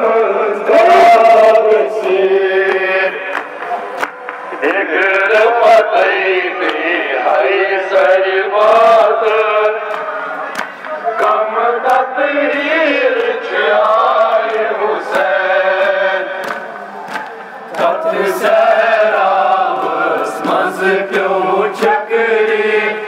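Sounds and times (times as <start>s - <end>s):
men chanting a lament: 0.0s - 23.0s.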